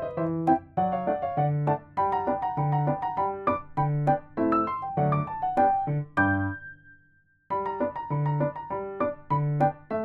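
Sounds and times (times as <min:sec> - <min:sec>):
light piano music: 0:00.0 - 0:10.0.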